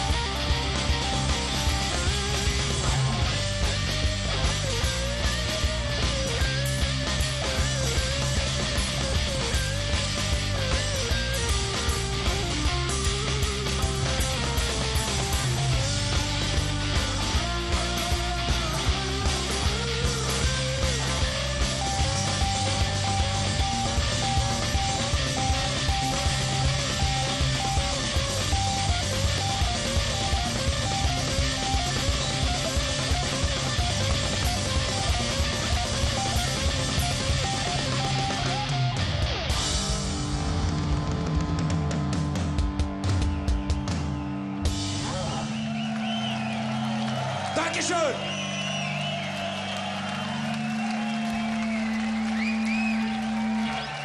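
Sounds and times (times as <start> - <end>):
bass guitar: 0.0 - 54.0
distorted electric guitars: 0.0 - 54.0
drum kit: 0.0 - 54.0.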